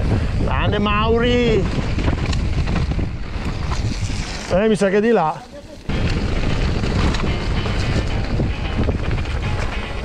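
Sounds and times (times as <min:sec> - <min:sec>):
wind roaring over microphone: 0:00.0 - 0:05.0, 0:05.7 - 0:10.0.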